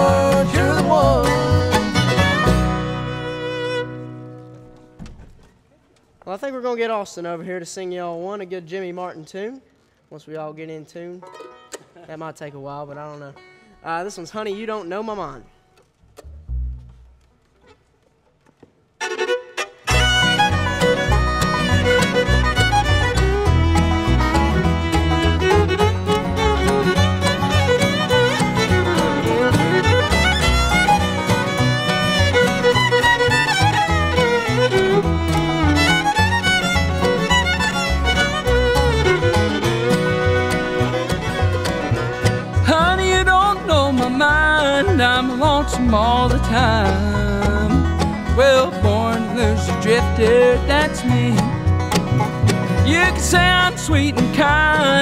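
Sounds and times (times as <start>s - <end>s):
fiddle melody: 0.0s - 4.9s, 18.9s - 55.0s
bluegrass band playing: 0.0s - 5.0s, 11.2s - 12.1s, 12.7s - 17.8s, 18.9s - 55.0s.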